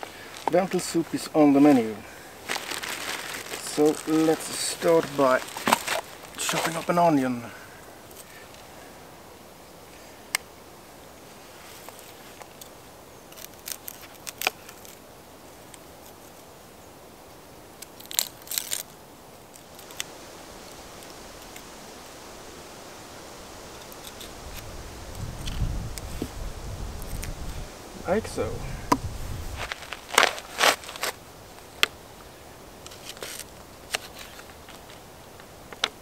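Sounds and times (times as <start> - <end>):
onion skin crackling and tearing: 2.4 - 6.9, 13.3 - 15.0, 17.8 - 20.1, 29.5 - 31.2.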